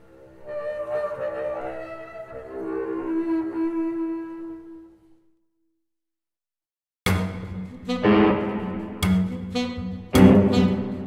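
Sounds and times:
saxophone guitar and bass music: 7.1 - 11.0.

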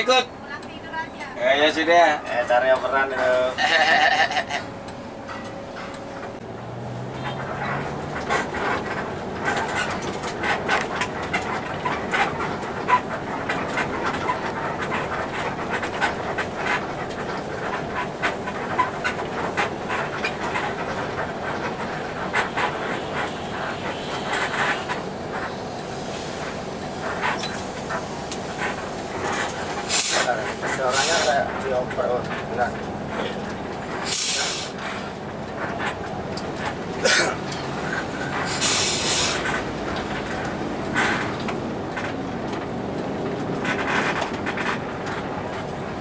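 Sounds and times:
bus engine running: 0.0 - 46.0
rattles and clicks: 1.7 - 46.0.

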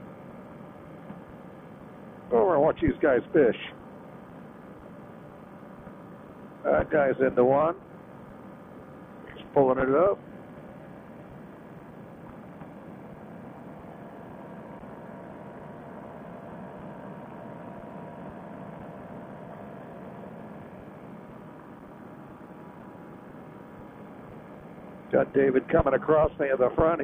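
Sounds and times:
paramotor engine drone: 0.0 - 27.0.

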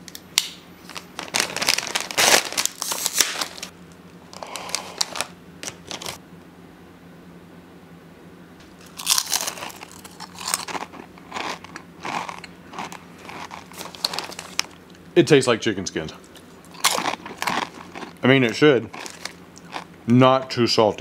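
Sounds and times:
snack bag rustling: 0.8 - 3.7, 4.3 - 6.2, 8.7 - 14.8, 16.4 - 19.9
fried chicken skin crunching: 8.8 - 14.8, 16.3 - 19.9.

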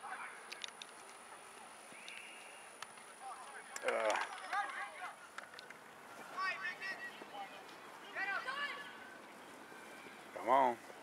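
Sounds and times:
faint crowd noise: 0.0 - 11.0.

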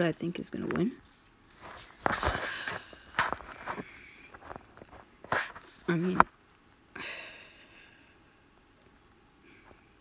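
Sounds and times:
microphone handling noises: 1.6 - 6.3.

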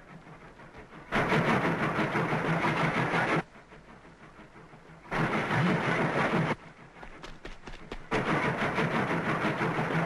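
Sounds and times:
cartoon train rushing: 0.0 - 10.0.

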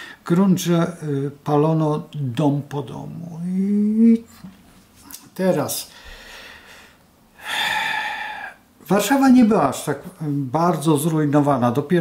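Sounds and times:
man breathing in: 5.9 - 8.6.

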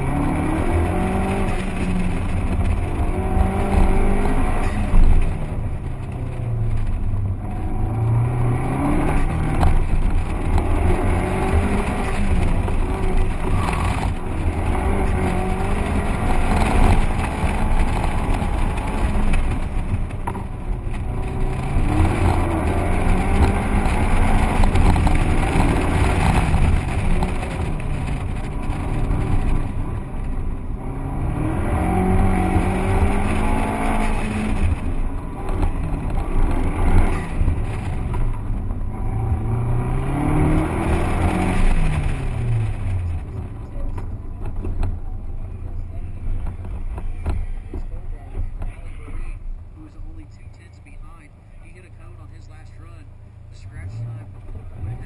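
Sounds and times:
car engine revving: 0.0 - 55.0.

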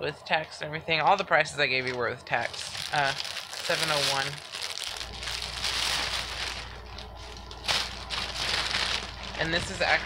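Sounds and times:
low steady hum: 0.0 - 10.0
plastic bag crinkling: 1.9 - 10.0.

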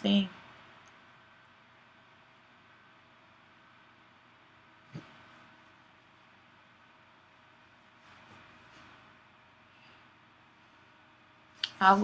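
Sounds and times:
faint room hiss and hum: 0.0 - 12.0.

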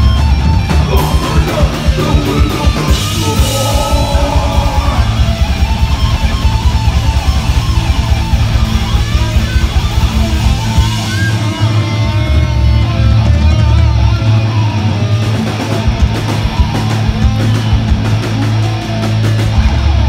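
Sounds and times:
fast dense drumming: 0.0 - 20.0
heavy rock band playing: 0.0 - 20.0.

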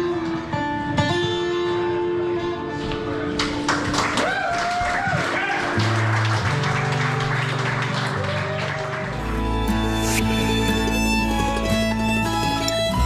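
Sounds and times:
gliding melody: 9.0 - 13.0
low bass notes: 9.2 - 13.0.

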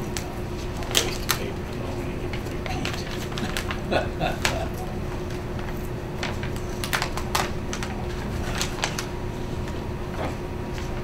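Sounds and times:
low room hum: 0.0 - 11.0
papers being handled: 0.0 - 11.0.

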